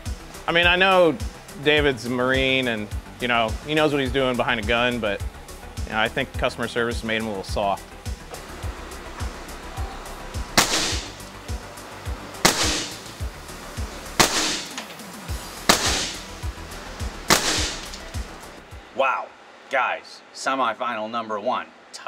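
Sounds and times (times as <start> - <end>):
background music with steady beat: 0.0 - 19.0
air rifle shots: 10.6 - 11.2, 12.4 - 13.2, 14.2 - 14.9, 15.7 - 16.3, 17.3 - 18.1.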